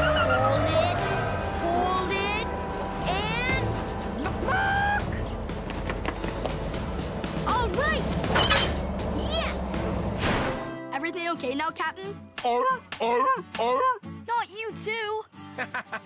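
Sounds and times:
low rumble of vehicles: 0:00.0 - 0:10.7
action music: 0:00.0 - 0:13.0.

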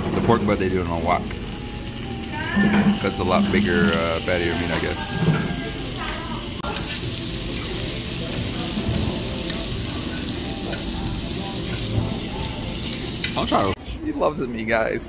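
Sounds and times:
meat and vegetables sizzling: 0:00.0 - 0:13.8
metal tongs stirring: 0:02.6 - 0:05.5.

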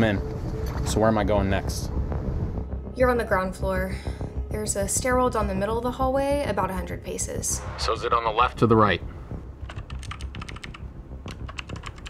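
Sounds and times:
fast typing on keyboard: 0:09.6 - 0:12.0.

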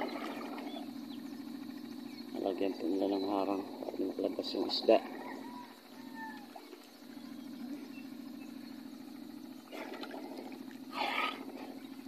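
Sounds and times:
water splashing: 0:00.0 - 0:01.0, 0:09.7 - 0:11.8
steady low hum: 0:00.0 - 0:12.0.

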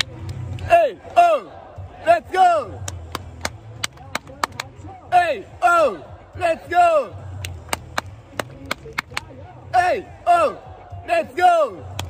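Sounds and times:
hands clapping: 0:00.0 - 0:00.7, 0:02.8 - 0:04.8, 0:07.4 - 0:09.4
crowd cheering chants: 0:00.6 - 0:03.0, 0:05.1 - 0:07.6, 0:09.7 - 0:12.0.

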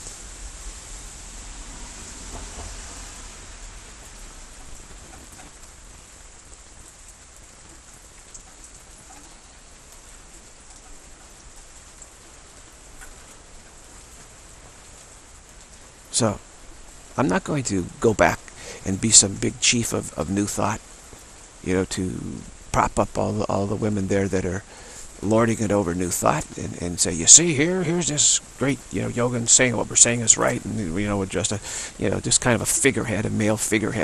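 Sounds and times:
low rumble: 0:00.0 - 0:05.1
steady rain falling: 0:00.0 - 0:34.0.

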